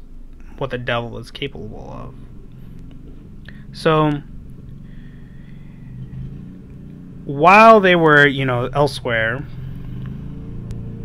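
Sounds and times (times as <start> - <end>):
faint thin whine: 0.0 - 11.0
low rumble: 0.0 - 11.0.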